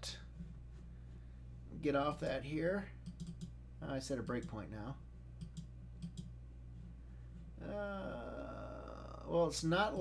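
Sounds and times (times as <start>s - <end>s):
computer mouse clicks: 3.0s - 3.6s, 5.4s - 6.3s
person saying uh: 7.6s - 10.0s.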